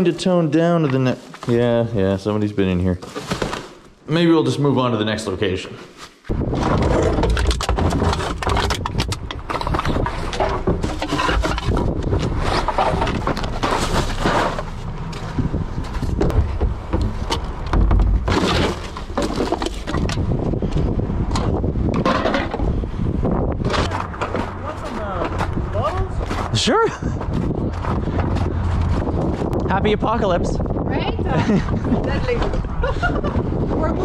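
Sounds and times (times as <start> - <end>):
wind buffeting microphone: 6.3 - 13.6, 14.8 - 18.3, 19.0 - 34.0.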